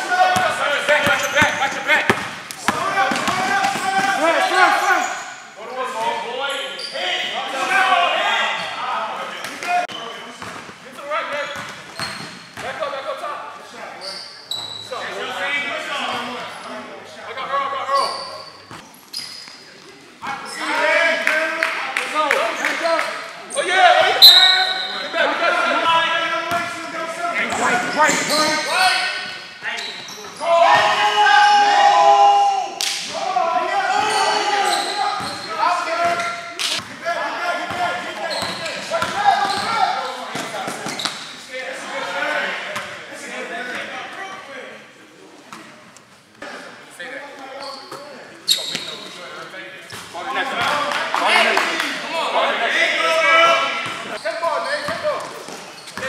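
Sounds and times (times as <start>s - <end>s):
players calling out: 0.0s - 10.4s, 11.0s - 44.5s.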